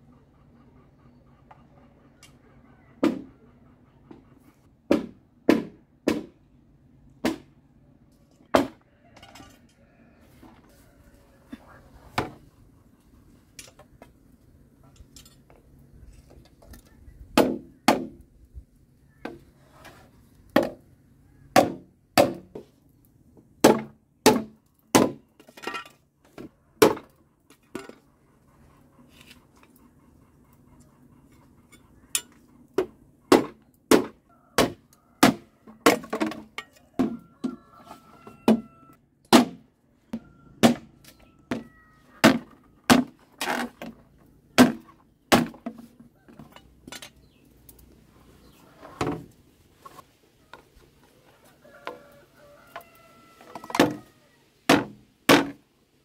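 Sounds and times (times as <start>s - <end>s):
machete chopping bamboo: 4.9s - 6.4s, 7.2s - 7.5s, 17.4s - 18.2s, 21.6s - 22.6s, 23.6s - 25.2s, 33.3s - 36.2s, 39.3s - 39.6s, 40.6s - 40.9s, 42.2s - 43.2s, 44.6s - 45.8s, 54.7s - 55.6s.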